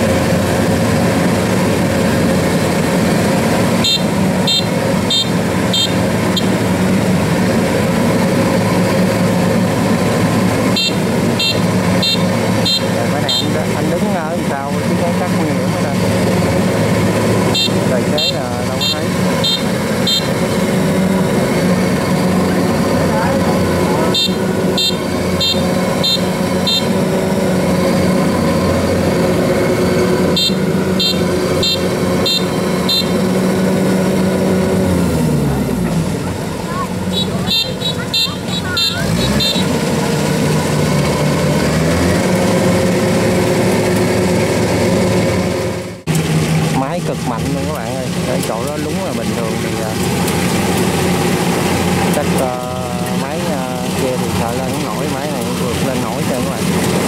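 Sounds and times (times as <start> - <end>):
diesel engine running under load: 0.0 - 57.0.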